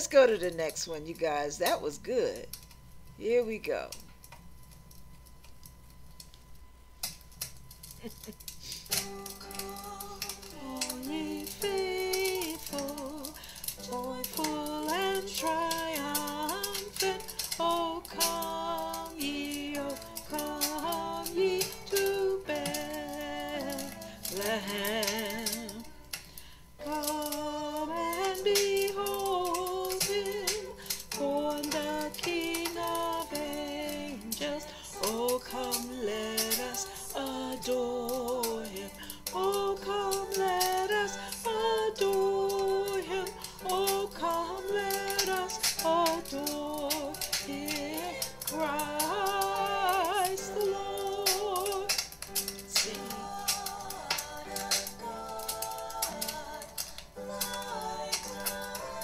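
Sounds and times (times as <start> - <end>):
woman singing a carol: 0.0 - 2.5, 8.9 - 26.0, 26.8 - 59.0
musical accompaniment: 7.1 - 59.0.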